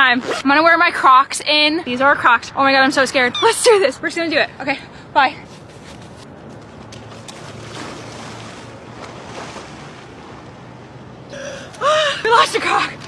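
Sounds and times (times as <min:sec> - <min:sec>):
surf at shoreline: 0:07.4 - 0:13.0
woman gasping and crying out: 0:11.3 - 0:12.4.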